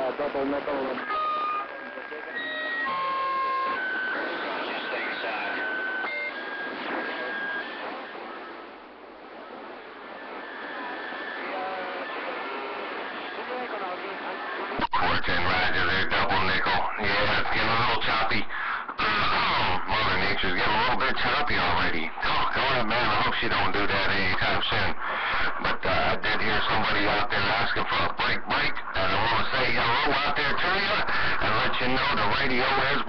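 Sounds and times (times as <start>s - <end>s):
distant radio voices: 0.0s - 8.6s, 9.3s - 33.0s
loud radio station: 0.0s - 33.0s
radio band hiss: 0.0s - 33.0s.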